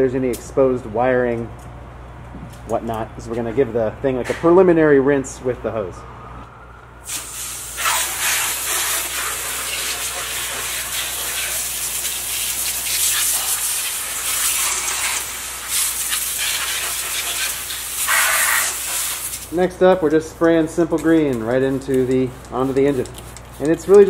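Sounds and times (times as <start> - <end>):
hose spraying water: 7.0 - 19.7.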